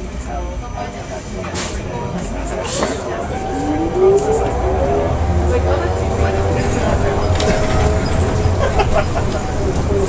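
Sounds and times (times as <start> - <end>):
rumble of the ride: 0.0 - 10.0
motor whining upward: 3.0 - 8.2.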